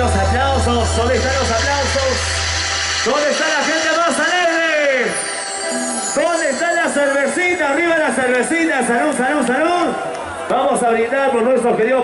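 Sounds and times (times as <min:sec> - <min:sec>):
steady low hum: 0:00.0 - 0:04.0.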